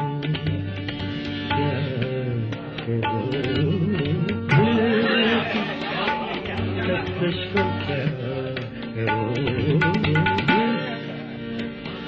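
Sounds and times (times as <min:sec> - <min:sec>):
soft instrumental accompaniment: 0:00.0 - 0:12.0
people chattering and calling out: 0:00.4 - 0:12.0.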